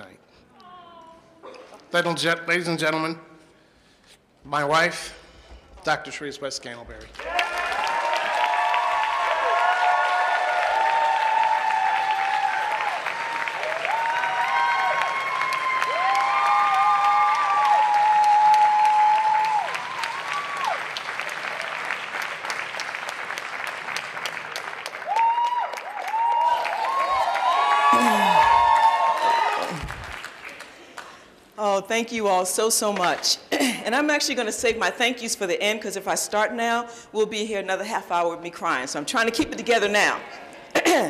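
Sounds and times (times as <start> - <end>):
audience applauding: 7.1 - 31.3.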